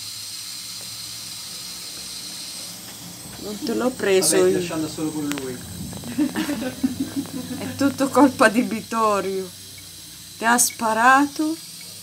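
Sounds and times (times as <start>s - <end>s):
water running into metal sink: 0.2s - 12.0s.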